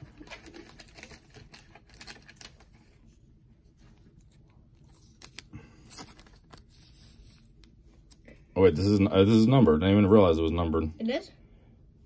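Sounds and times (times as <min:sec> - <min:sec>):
cards and plastic sleeve rustling: 0:00.0 - 0:08.4.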